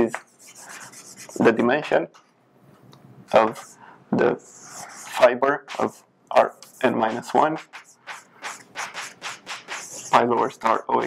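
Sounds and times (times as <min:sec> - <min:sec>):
chalk scratching on blackboard: 0:00.0 - 0:02.0, 0:04.4 - 0:11.0.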